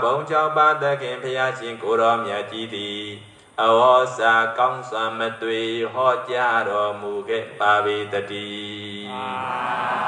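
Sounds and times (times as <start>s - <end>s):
person chanting into microphone: 0.0s - 10.0s
many voices chanting together: 0.1s - 10.0s.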